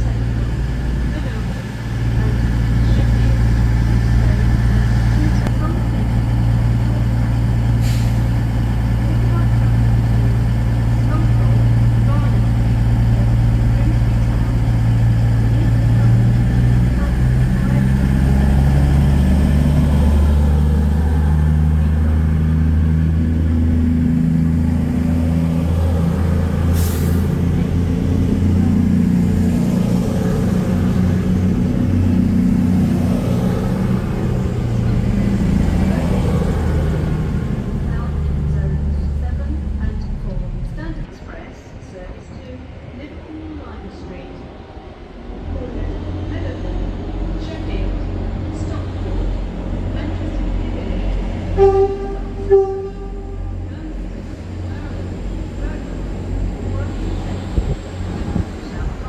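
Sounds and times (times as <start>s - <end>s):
diesel train engines rising in pitch: 0.0s - 59.0s.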